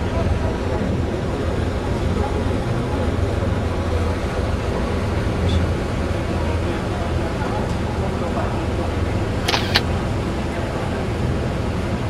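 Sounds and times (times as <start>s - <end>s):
short sharp clicks: 9.5s - 9.9s.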